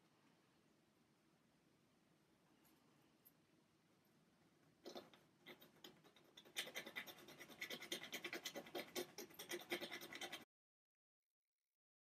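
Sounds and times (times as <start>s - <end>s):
pointed tool scratching paint: 4.9s - 10.5s.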